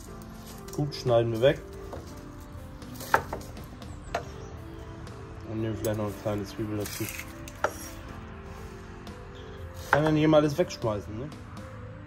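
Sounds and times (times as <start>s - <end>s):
quiet background music: 0.0s - 12.0s
cleaver cutting onion on board: 9.8s - 10.2s.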